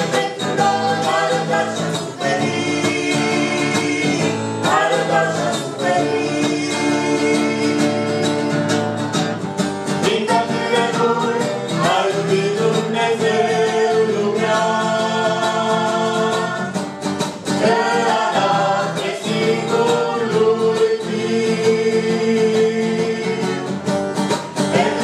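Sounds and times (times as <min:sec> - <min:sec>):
vocal group singing worship song: 0:00.0 - 0:08.7, 0:09.9 - 0:23.8, 0:24.4 - 0:25.0
instrumental accompaniment: 0:00.0 - 0:25.0.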